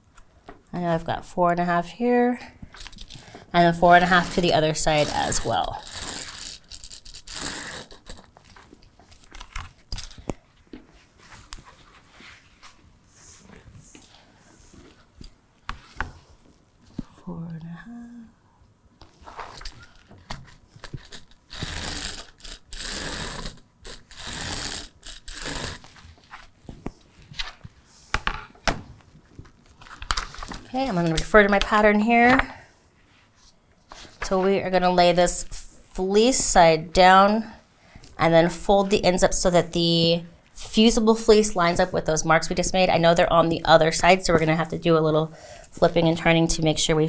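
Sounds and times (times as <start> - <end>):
pen scratching on fabric: 4.0 - 8.3, 21.5 - 26.0.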